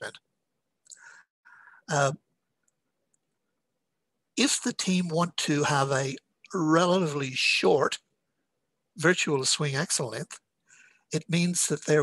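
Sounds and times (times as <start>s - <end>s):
man saying uh: 1.9s - 2.2s.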